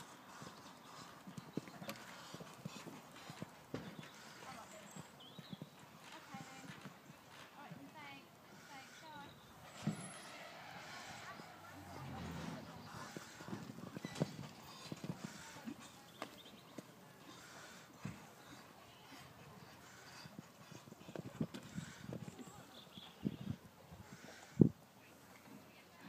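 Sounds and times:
low voices: 0:08.6 - 0:16.3.

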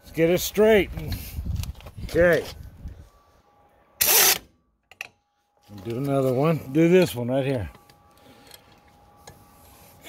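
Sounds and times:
pneumatic impact wrench: 0:04.0 - 0:04.5.

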